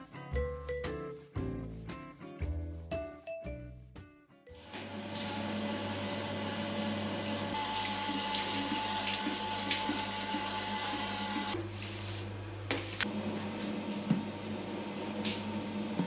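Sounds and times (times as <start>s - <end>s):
shower spraying water on tiles: 4.6s - 11.6s.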